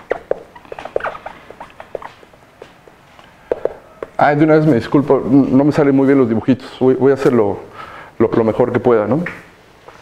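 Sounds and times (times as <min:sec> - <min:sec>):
marker squeaking on whiteboard: 0:00.0 - 0:04.9.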